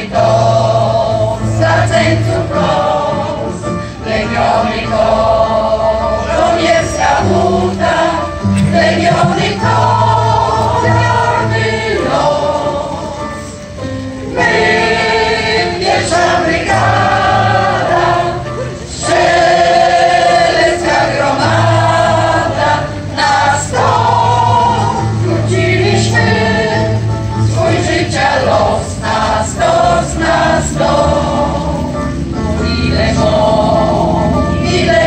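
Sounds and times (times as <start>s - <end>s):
mixed choir singing: 0.0s - 35.0s
electronic keyboard: 1.5s - 35.0s.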